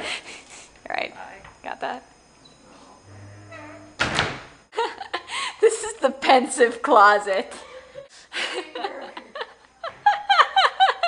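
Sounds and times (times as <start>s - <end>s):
wardrobe door banging shut: 3.5s - 4.6s.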